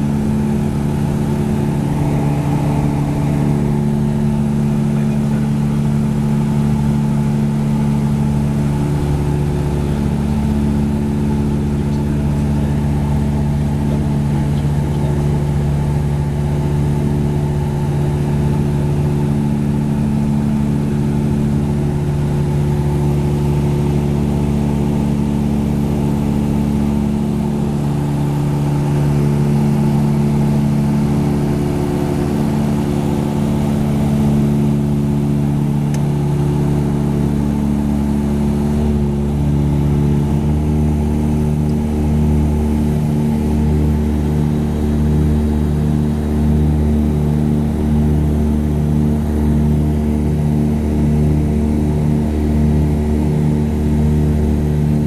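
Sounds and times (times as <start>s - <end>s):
aircraft engines droning in cockpit: 0.0s - 55.0s.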